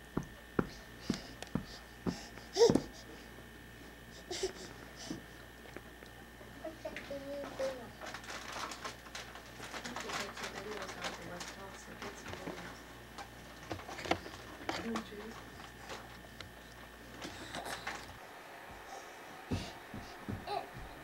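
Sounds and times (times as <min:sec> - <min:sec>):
steady low hum: 0:00.0 - 0:21.0
toddler babbling and cooing: 0:20.3 - 0:20.8.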